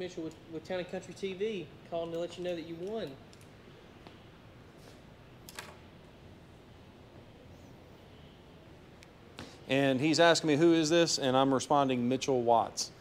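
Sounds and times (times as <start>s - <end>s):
low room hiss: 0.0s - 13.0s.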